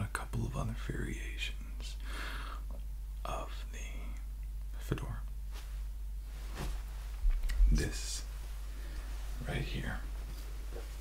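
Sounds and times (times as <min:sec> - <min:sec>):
man whispering: 0:00.0 - 0:02.0, 0:03.2 - 0:05.3, 0:07.5 - 0:08.4, 0:09.4 - 0:10.2.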